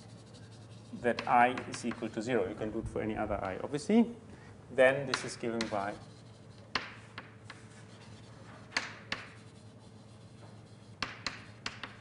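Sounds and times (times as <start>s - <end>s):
faint scratching strokes on board: 0.0s - 2.6s, 5.2s - 12.0s
writing tool tapping board: 1.1s - 2.1s, 5.1s - 5.9s, 6.7s - 7.7s, 8.7s - 9.4s, 10.4s - 12.0s.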